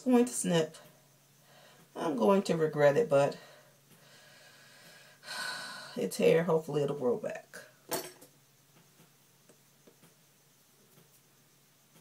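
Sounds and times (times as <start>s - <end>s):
woman's intake of breath: 3.4s - 6.0s.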